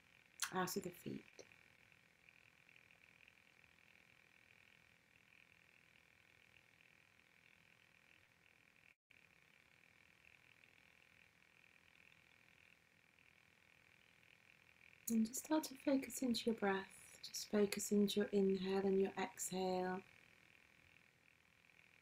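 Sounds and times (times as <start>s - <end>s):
high-pitched hum: 0.0s - 22.0s.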